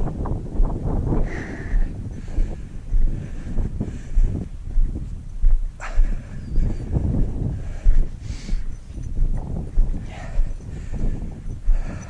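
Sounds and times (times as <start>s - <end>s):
footsteps on loose stones: 8.7s - 10.7s.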